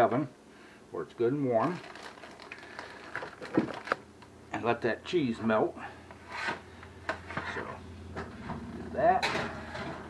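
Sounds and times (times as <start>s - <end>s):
plastic packaging rustling: 1.6s - 4.1s.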